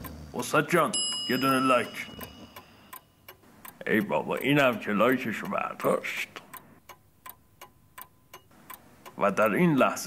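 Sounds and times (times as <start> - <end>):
faint clock ticking: 0.0 - 10.0.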